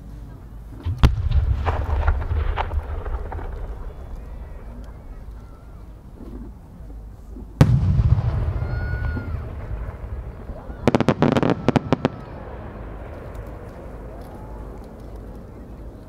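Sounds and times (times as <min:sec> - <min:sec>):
firework boom with rolling echo: 0:00.8 - 0:06.1, 0:07.6 - 0:14.9
crackling firework pops: 0:00.8 - 0:06.6, 0:07.6 - 0:16.0.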